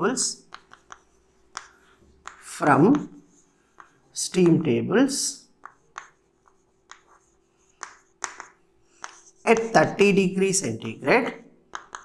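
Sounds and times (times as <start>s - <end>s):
faint steady hum: 0.0s - 12.0s
chalk tapping and scratching: 0.2s - 4.8s, 5.4s - 12.0s.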